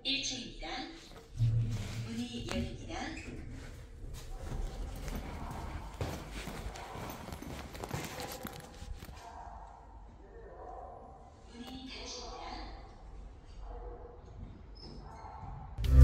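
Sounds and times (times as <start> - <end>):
footsteps on hard floor: 1.0 - 9.2.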